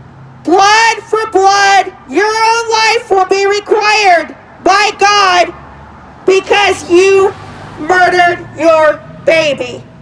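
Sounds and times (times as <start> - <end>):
woman calling through loudspeaker: 0.5 - 5.6, 6.2 - 9.9.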